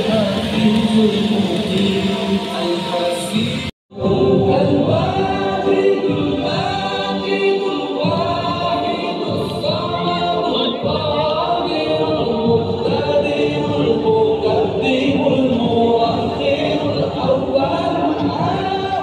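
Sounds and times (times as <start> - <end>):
voices singing together: 0.0 - 19.0.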